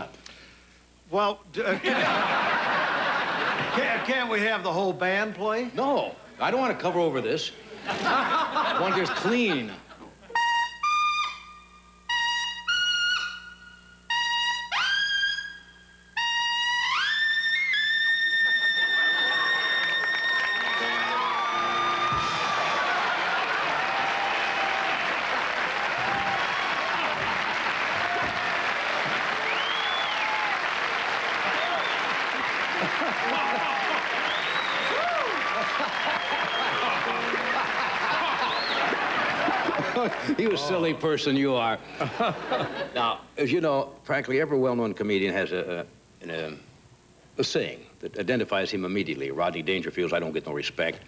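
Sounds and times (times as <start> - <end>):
audience laughing: 1.6 - 4.3, 7.6 - 10.3, 18.4 - 41.2, 41.8 - 43.2
audience applauding: 2.2 - 4.1, 18.4 - 41.2
solo trumpet playing: 10.3 - 15.6, 16.2 - 22.8.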